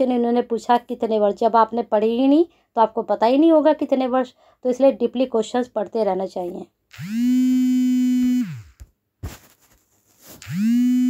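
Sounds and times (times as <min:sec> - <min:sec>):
phone buzzing tone: 0:06.9 - 0:08.7, 0:10.4 - 0:11.0.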